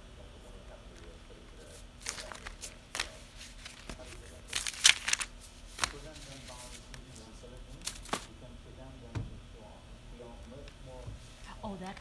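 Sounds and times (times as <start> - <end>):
paper sheets shuffling: 1.5 - 8.3
sharp paper rustles: 1.6 - 8.3.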